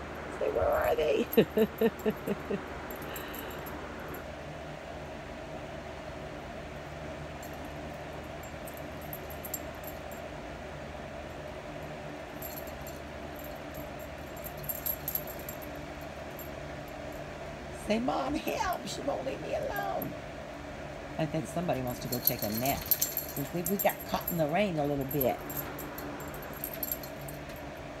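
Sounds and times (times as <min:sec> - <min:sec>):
dog collar tags jingling: 0:00.5 - 0:04.2, 0:12.3 - 0:17.1, 0:21.6 - 0:27.7.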